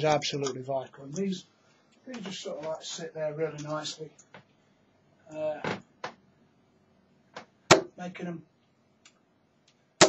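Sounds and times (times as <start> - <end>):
dart hitting dartboard: 7.7 - 7.9.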